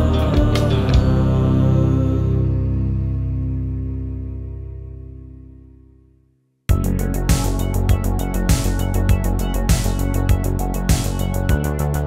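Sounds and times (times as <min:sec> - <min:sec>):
electric guitar and bass chord ringing: 0:00.0 - 0:12.0.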